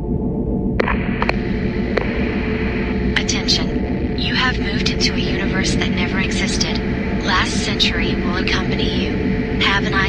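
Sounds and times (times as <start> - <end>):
low droning hum: 0.0 - 10.0
voice fragments: 3.2 - 10.0.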